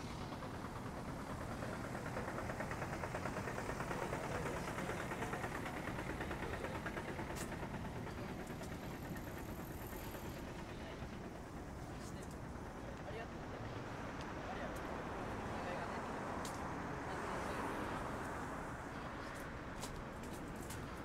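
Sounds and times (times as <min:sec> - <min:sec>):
road noise: 0:00.0 - 0:21.0.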